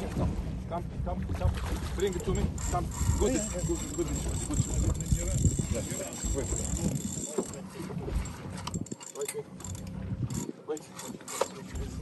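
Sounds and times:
fishing reel clicking: 2.6 - 7.6.

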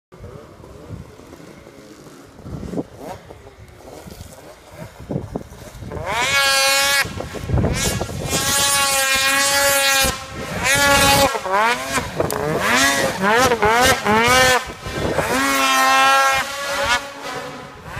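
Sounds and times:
snowmobile engine at high revs: 0.2 - 17.9.

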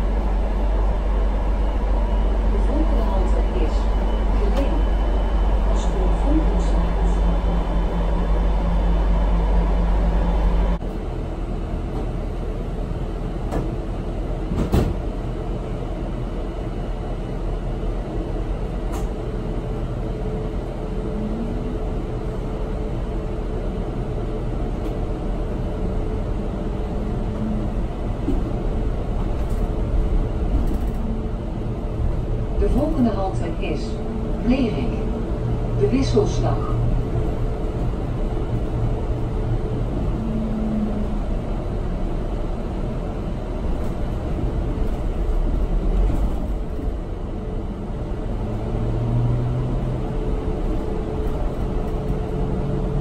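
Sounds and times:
low rumble of bus ride: 0.0 - 53.0.

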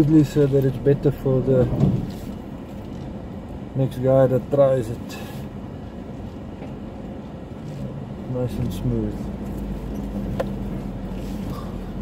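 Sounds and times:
pickup engine rumble: 0.0 - 12.0.

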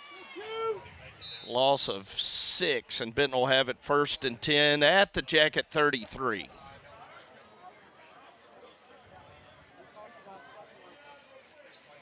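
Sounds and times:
distant crowd chatter: 0.0 - 3.4, 5.3 - 12.0.

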